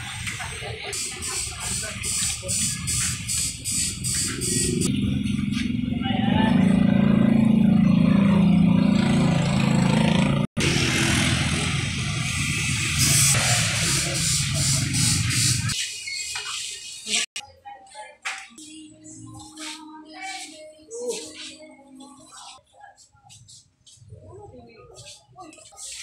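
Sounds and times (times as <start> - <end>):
street traffic: 0.0 - 17.4, 19.1 - 26.0
motor scooters riding past: 4.5 - 12.8.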